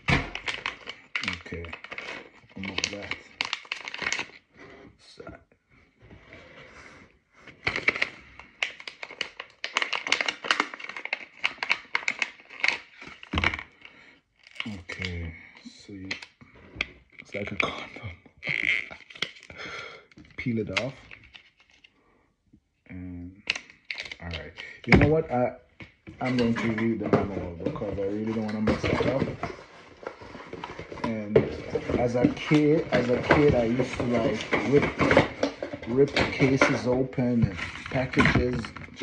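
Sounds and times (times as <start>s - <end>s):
packet crinkling and tearing: 0.0s - 4.5s, 7.6s - 15.2s, 17.1s - 21.9s, 23.4s - 24.9s, 26.2s - 39.0s.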